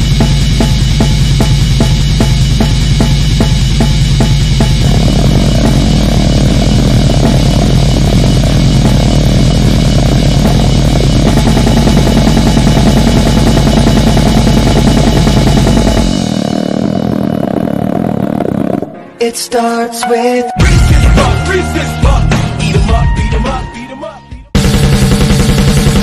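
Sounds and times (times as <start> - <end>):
fast steady drumming: 0.0 - 19.0, 20.6 - 23.6, 24.6 - 26.0
heavily distorted guitars and bass: 0.0 - 26.0.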